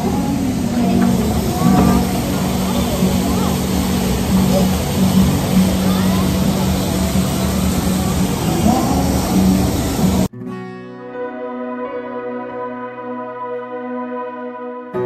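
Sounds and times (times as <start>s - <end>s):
people's voices: 0.0s - 10.3s
road traffic: 0.0s - 10.3s.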